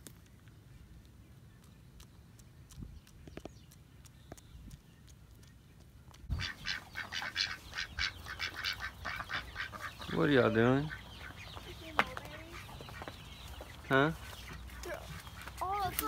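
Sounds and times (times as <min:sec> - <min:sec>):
rapid short bird calls: 0:06.3 - 0:16.0.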